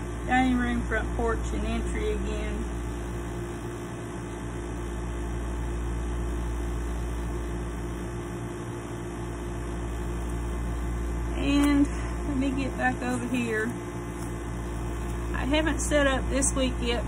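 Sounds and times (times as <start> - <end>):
electrical hum: 0.0 - 17.0.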